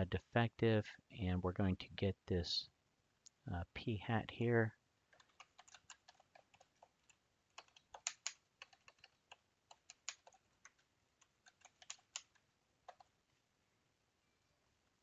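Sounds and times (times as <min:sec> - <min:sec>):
typing on computer keyboard: 0:05.1 - 0:13.1.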